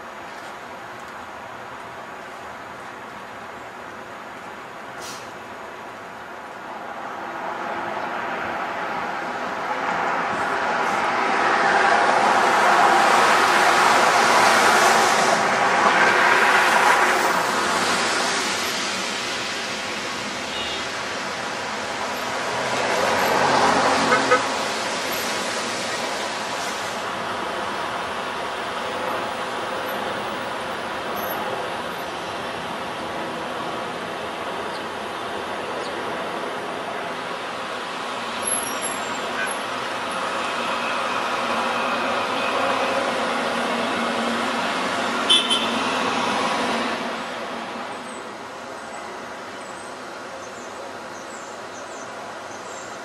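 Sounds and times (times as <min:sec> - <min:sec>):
passing vehicles: 0:00.0 - 0:53.0.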